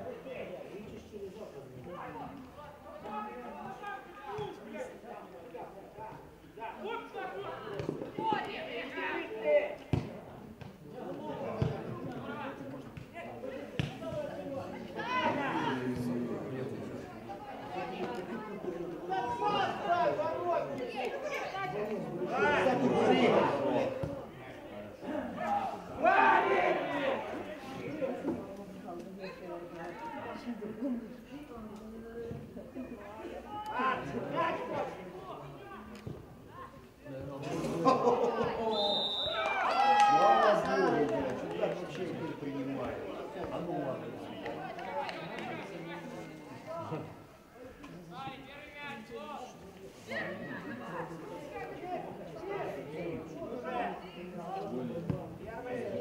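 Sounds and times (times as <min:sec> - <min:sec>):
boys shouting and calling: 0:01.9 - 0:09.9, 0:11.0 - 0:16.4, 0:17.3 - 0:28.4, 0:32.7 - 0:37.0, 0:37.8 - 0:38.7, 0:39.4 - 0:41.1.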